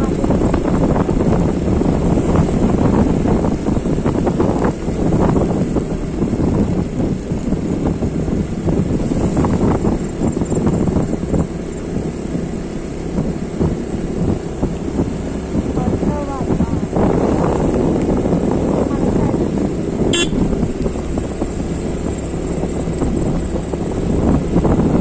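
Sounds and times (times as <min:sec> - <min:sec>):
vehicle running on wet road: 0:00.0 - 0:25.0
wind buffeting microphone: 0:00.0 - 0:25.0.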